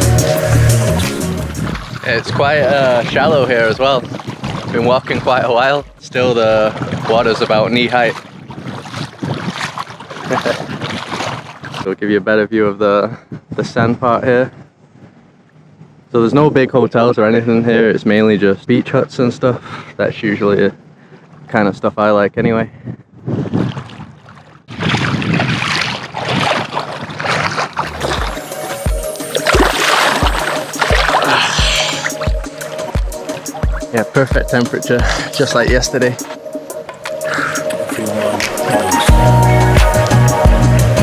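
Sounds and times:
music with steady beat: 0.0 - 1.9, 27.9 - 41.0
water splashing around wading legs: 0.8 - 11.9, 23.6 - 39.0
wind buffeting microphone: 1.5 - 11.9, 22.4 - 28.5.

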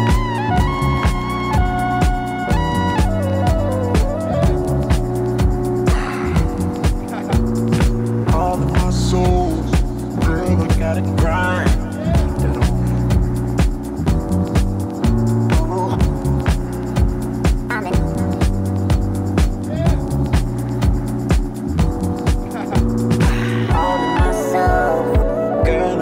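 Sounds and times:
jazzy house music: 0.0 - 26.0.

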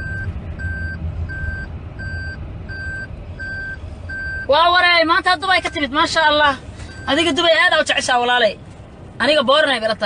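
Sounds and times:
electronic beeping: 0.0 - 4.5
low steady rumble: 0.0 - 10.0.

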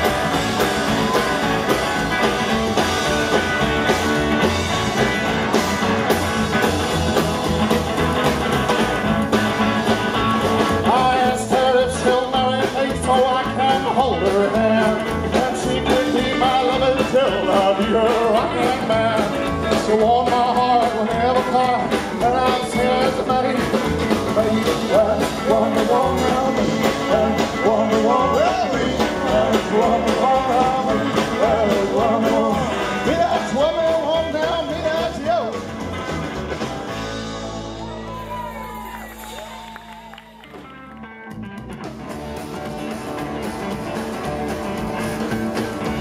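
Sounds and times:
acoustic guitar: 0.0 - 46.0
drum kit: 0.0 - 46.0
electric guitar: 0.0 - 46.0
upright bass: 0.0 - 46.0.

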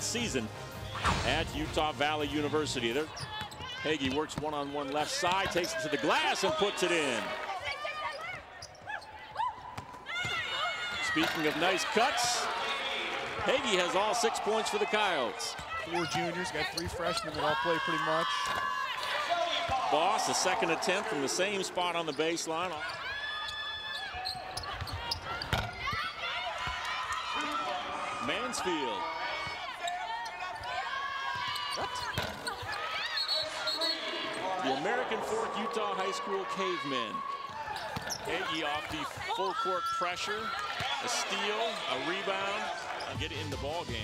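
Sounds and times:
shoes squeaking on hardwood court: 3.0 - 6.7, 7.8 - 11.5, 15.5 - 17.8, 21.9 - 26.0, 31.4 - 34.6, 37.5 - 39.9.

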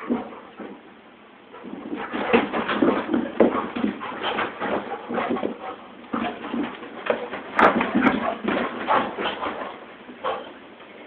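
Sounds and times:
dog paws thumping and scuffling: 0.0 - 10.8.

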